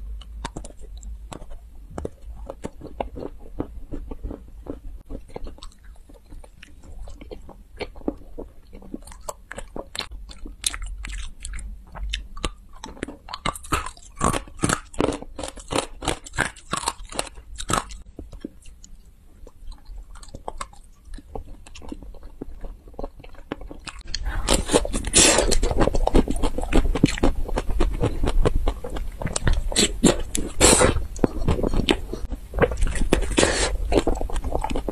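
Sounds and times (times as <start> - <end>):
person chewing crunchy sweets: 0.0 - 34.9.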